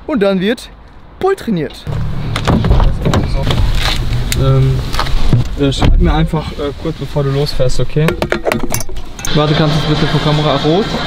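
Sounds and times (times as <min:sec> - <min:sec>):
sharp clicks and knocks: 0:01.9 - 0:04.4, 0:08.0 - 0:09.3
car door opening: 0:01.9 - 0:06.2
rustling: 0:01.9 - 0:08.0
camera handling rumble: 0:02.3 - 0:05.6.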